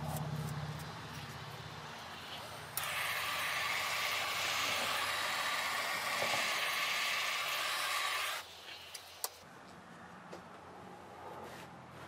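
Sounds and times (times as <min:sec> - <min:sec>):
torch flame hissing: 0:02.2 - 0:09.0.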